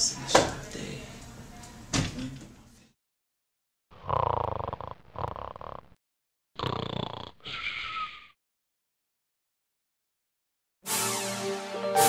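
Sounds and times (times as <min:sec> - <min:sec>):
loud snoring: 0:03.9 - 0:06.0, 0:06.6 - 0:07.9.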